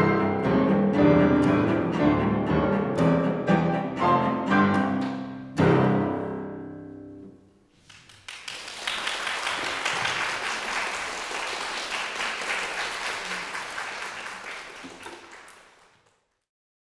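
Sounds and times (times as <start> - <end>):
audience applause: 7.8 - 16.4.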